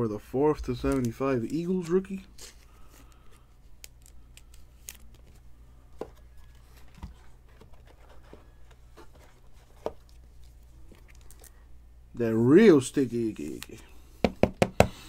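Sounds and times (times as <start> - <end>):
steady low hum: 0.0 - 15.0
card rustle and clicks: 0.6 - 11.6, 13.4 - 13.9.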